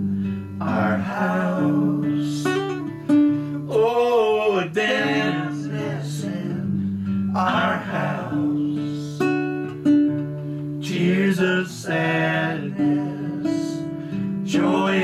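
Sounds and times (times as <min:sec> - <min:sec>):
acoustic guitar: 0:00.0 - 0:15.0
voices singing held notes: 0:00.6 - 0:02.9, 0:03.7 - 0:09.5, 0:10.8 - 0:15.0.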